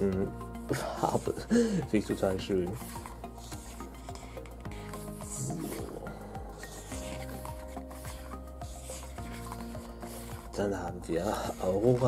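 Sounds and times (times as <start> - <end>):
quiet background music: 0.0 - 12.0
photobook pages turning: 2.0 - 12.0.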